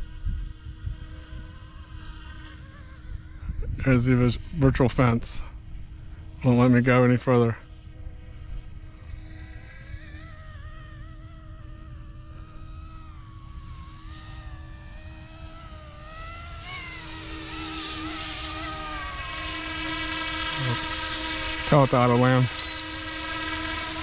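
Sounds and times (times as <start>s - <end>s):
low wind rumble: 0.0s - 24.0s
rc helicopter motor whine: 0.0s - 24.0s.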